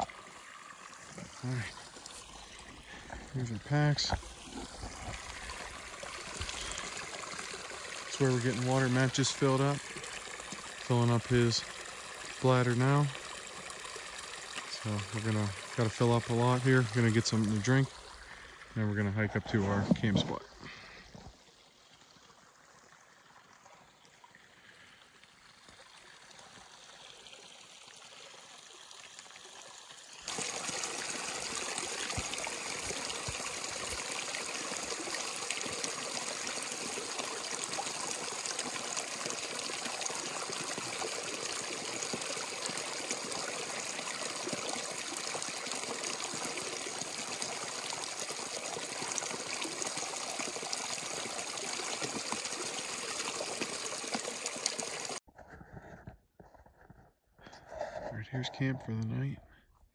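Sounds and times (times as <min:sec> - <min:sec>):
stream trickling and gurgling: 0:00.0 - 0:55.3.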